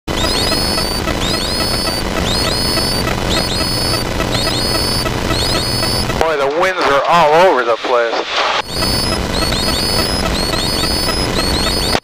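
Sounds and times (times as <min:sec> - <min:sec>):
electronic alert tones: 0:00.1 - 0:06.3, 0:08.6 - 0:12.0.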